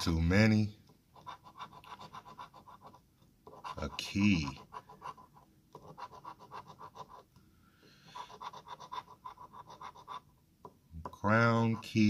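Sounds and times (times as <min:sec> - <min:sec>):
coin scratching lottery ticket: 0:01.1 - 0:07.2, 0:08.2 - 0:10.3.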